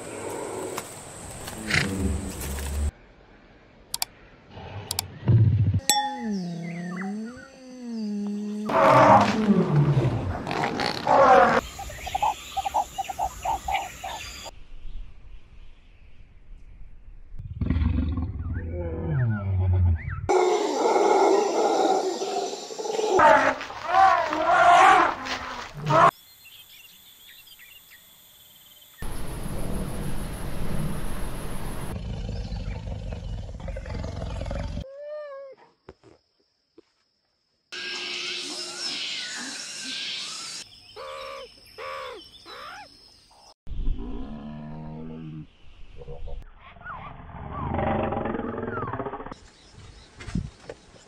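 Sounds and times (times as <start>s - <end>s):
lion roaring: 6.6s - 11.6s, 31.9s - 34.8s.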